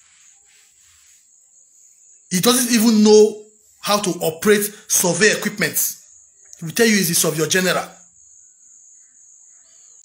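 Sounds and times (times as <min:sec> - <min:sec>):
low background hiss: 0:00.0 - 0:08.7
crickets trilling: 0:00.0 - 0:10.0.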